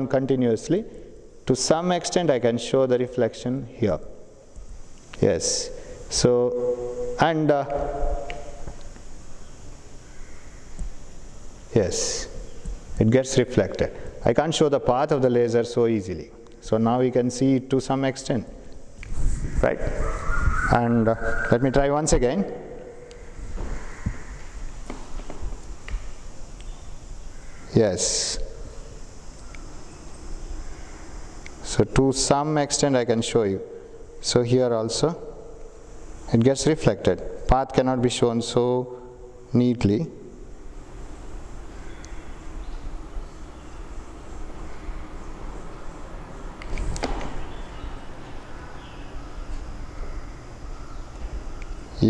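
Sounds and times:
sharp click: 46.6 - 47.4.

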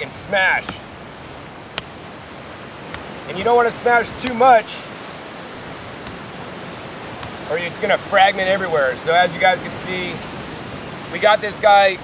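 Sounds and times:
ocean surf hissing: 0.0 - 12.0.

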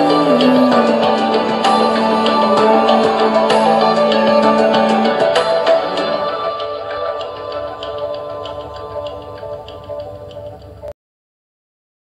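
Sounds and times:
held instrumental chords: 0.0 - 10.9
light ticking beat: 0.0 - 10.9.

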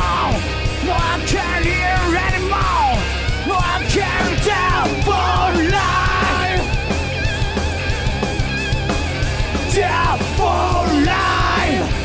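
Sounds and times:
heavy rock band playing live: 0.0 - 12.0.

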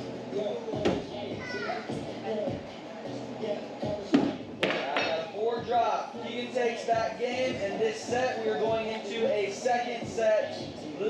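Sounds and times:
background chatter: 0.0 - 11.0.

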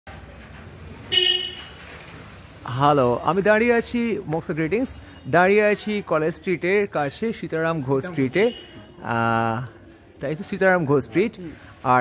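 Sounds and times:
low street background: 0.1 - 12.0
vehicle horn honk: 1.1 - 1.8.

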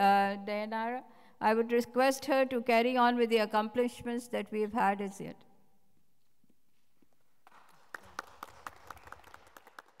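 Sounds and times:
people clapping: 7.2 - 10.0.

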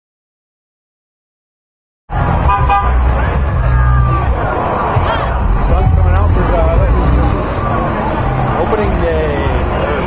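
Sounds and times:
people talking on street: 2.1 - 10.0
vehicle engines running: 2.1 - 10.0
car horn toots: 2.4 - 3.1.

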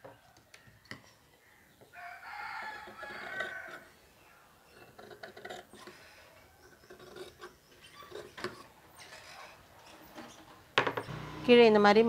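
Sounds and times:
rooster crowing: 1.9 - 3.9.

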